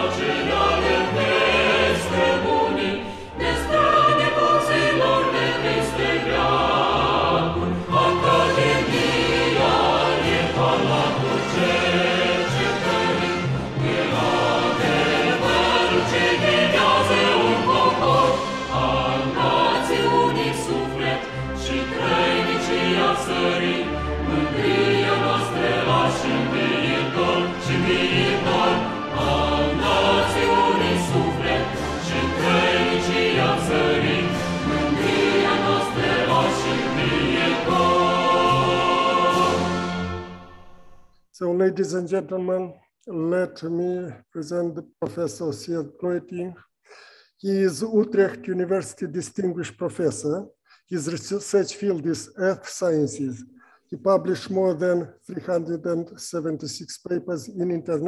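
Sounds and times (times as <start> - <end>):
choir singing with accompaniment: 0.0 - 41.0.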